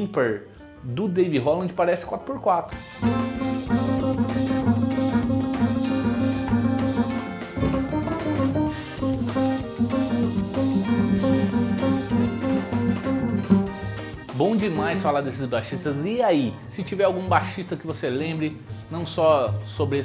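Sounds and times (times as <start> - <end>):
drum kit: 2.8 - 15.4
upright bass pizzicato: 3.1 - 14.0.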